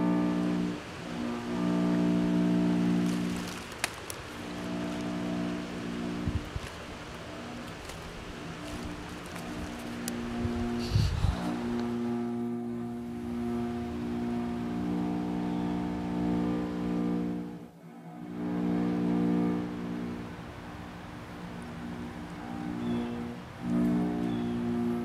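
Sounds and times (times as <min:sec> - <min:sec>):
dark drone music: 0:00.0 - 0:25.0.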